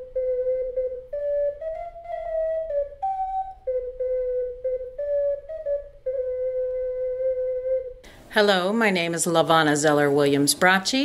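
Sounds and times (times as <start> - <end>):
ocarina playing a tune: 0.0 - 8.1.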